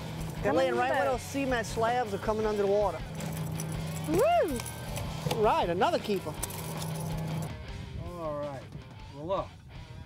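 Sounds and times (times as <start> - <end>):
person cheering woo: 4.1 - 4.7.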